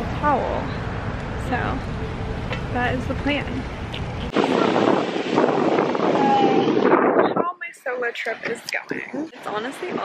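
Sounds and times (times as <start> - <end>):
low wind rumble: 0.0 - 10.0
wind noise on microphone: 3.0 - 10.0.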